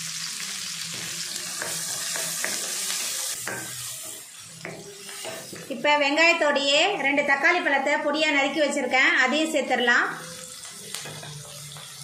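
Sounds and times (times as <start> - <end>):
shallots sizzling in hot oil: 0.0 - 12.0.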